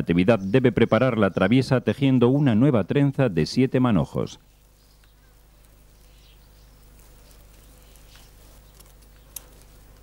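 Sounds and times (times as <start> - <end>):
steady low hum: 0.0 - 10.0
grass fibres rustling: 4.4 - 10.0
sharp ticks of strands: 4.5 - 10.0.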